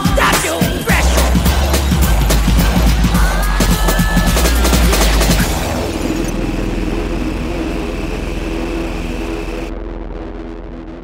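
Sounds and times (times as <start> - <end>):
steady high tone: 0.0 - 9.8
low hum: 1.0 - 11.0
noisy sustained closing sound: 1.2 - 9.8.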